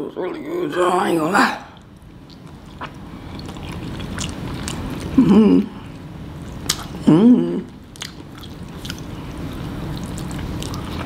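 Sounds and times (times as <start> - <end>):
person chewing noodles: 1.7 - 11.0.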